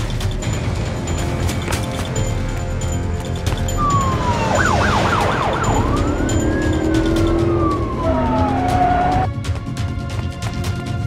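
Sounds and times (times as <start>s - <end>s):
police car siren: 3.8s - 9.3s.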